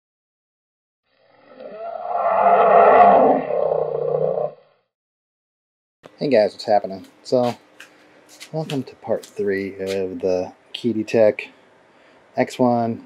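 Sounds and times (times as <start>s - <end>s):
roar-like intro sound effect: 1.2s - 4.8s.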